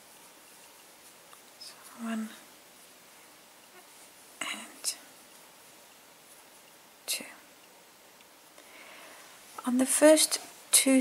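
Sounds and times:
person speaking softly: 1.6s - 2.5s, 4.4s - 5.1s.

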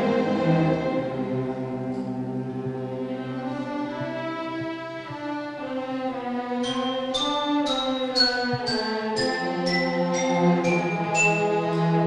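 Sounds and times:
string orchestra sustained chord: 0.0s - 12.0s.

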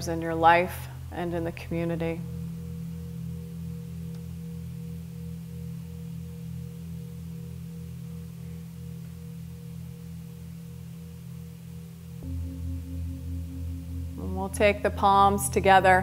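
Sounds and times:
singing bowl ring: 0.0s - 16.0s
soft ambient drone music: 0.0s - 16.0s.

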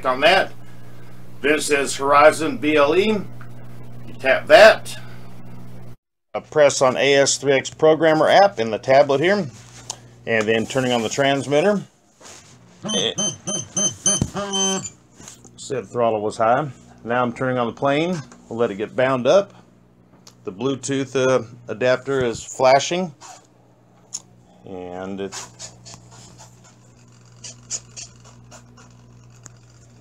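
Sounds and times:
long held electronic tone: 12.8s - 15.0s
rapid electronic beeps: 12.9s - 14.9s
scratchy bursts: 25.2s - 30.0s.

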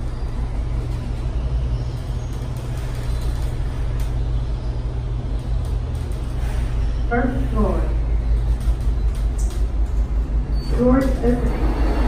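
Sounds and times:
elevator cab low rumble: 0.0s - 12.0s.

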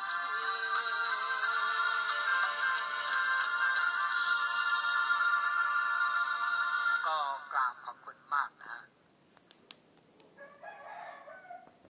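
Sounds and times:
rooster crowing: 10.4s - 11.9s.

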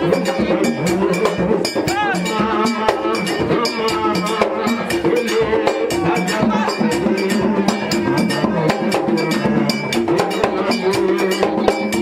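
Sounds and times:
drums: 0.0s - 12.0s.

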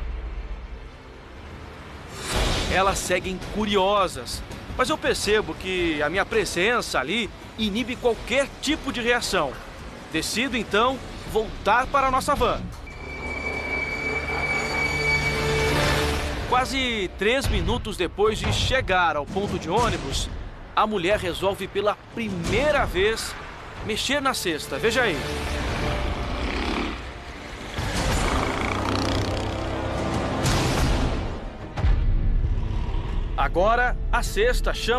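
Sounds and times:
street traffic noise: 0.0s - 2.3s, 12.6s - 17.1s, 20.5s - 30.4s
vehicle brakes squealing: 12.8s - 16.4s.

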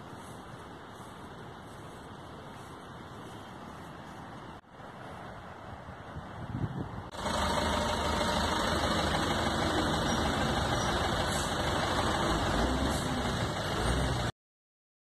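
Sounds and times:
truck engine and road noise: 0.0s - 14.4s.

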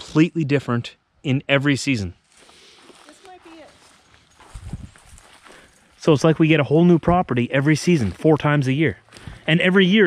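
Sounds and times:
footsteps on leaves and twigs: 2.2s - 6.6s, 7.5s - 10.0s.

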